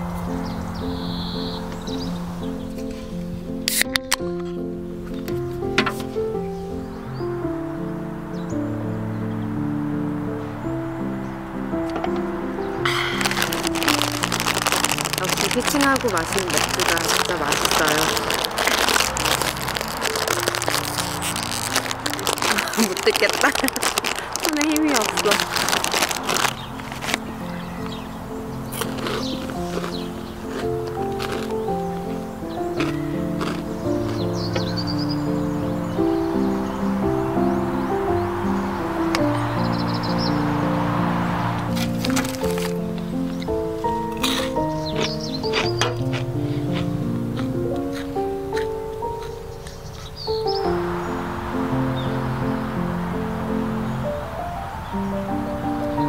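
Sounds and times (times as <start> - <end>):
soft background music: 0.0 - 56.0
plastic snack bag crinkling: 12.9 - 28.0, 28.6 - 32.2, 32.8 - 34.2, 41.8 - 43.4, 44.1 - 47.5.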